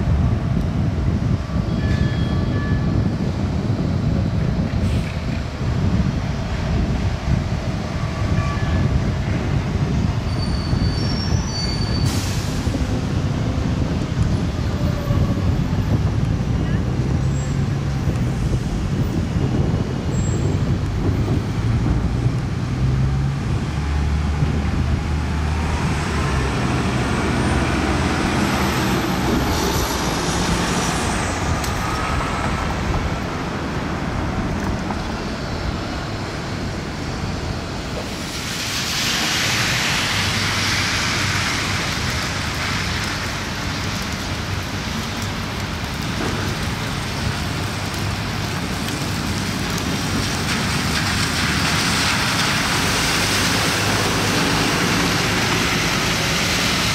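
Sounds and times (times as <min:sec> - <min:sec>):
bus engine rumble: 0:00.0 - 0:56.9
brakes squealing: 0:09.9 - 0:12.9
air brake hiss: 0:12.0 - 0:12.6.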